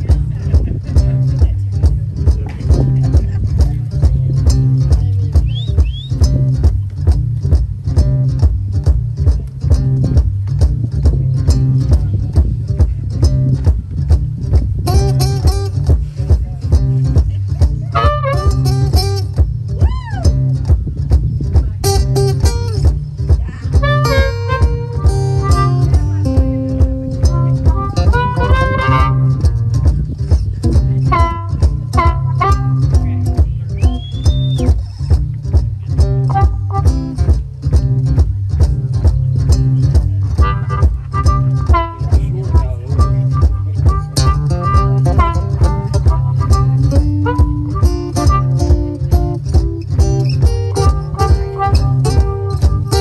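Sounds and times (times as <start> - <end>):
acoustic guitar boogie rhythm: 0.0 - 53.0
steady low beat: 0.0 - 53.0.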